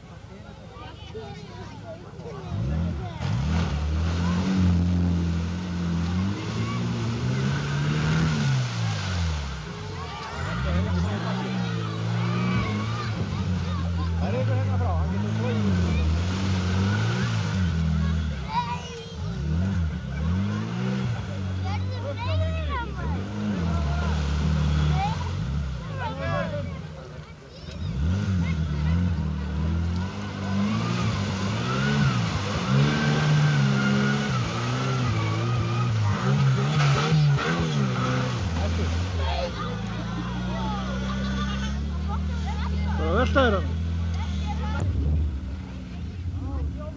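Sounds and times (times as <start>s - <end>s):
off-road vehicle engine revving: 0.0s - 46.9s.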